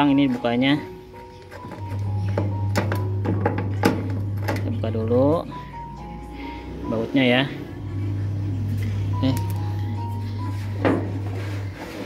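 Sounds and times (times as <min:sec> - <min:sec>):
soft background music: 0:00.0 - 0:12.0
low steady hum: 0:02.0 - 0:11.7.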